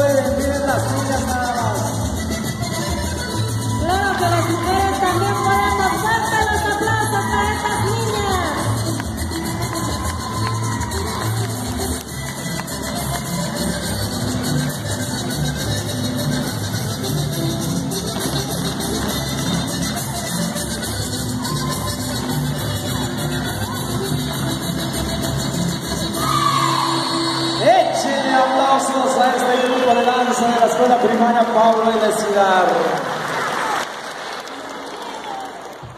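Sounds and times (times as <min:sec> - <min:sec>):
polka music with bouncing bass: 0:00.0 - 0:28.1
audience applauding: 0:08.9 - 0:12.8, 0:29.0 - 0:35.9.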